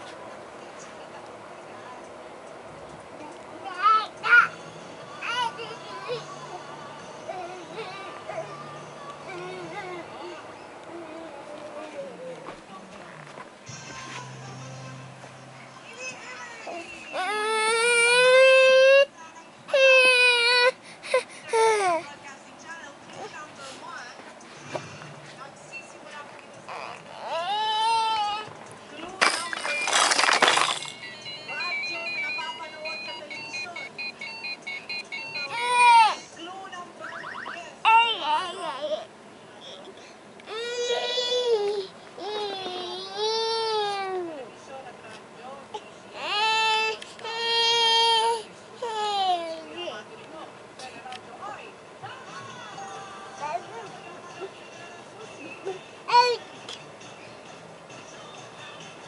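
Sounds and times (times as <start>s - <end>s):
soft voice: 7.3s - 13.1s.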